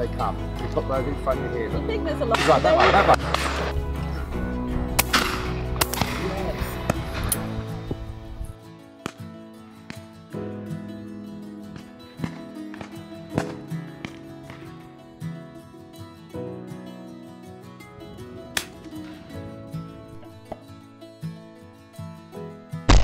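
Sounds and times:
background music with sustained notes: 0.0s - 23.0s
loud shotgun shots: 5.0s - 7.0s
faint sharp cracks: 5.0s - 7.4s.

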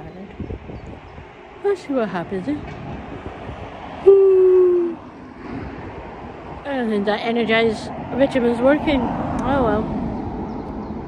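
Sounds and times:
woman yawning: 4.0s - 5.0s.

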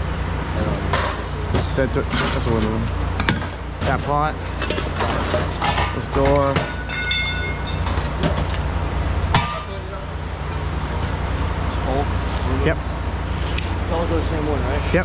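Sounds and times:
low machinery hum: 0.0s - 15.0s
ringing metallic clang: 5.6s - 8.4s.

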